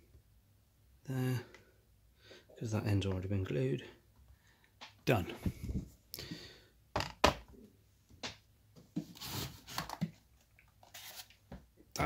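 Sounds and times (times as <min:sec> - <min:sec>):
plastic boxes knocking on wood: 0:07.0 - 0:07.5
rustling and rubbing: 0:08.8 - 0:11.5.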